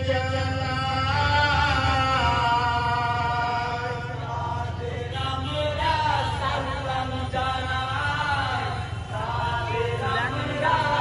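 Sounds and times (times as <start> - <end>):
men chanting folk melody: 0.0 - 11.0.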